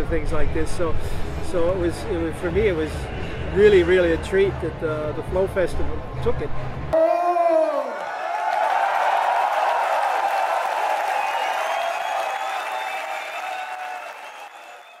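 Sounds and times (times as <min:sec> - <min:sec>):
person shouting: 0:07.0 - 0:08.0
audience applauding and cheering: 0:07.5 - 0:15.0.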